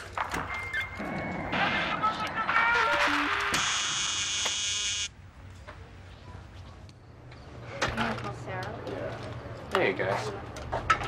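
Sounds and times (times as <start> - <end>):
harsh electronic buzz: 3.3 - 5.1.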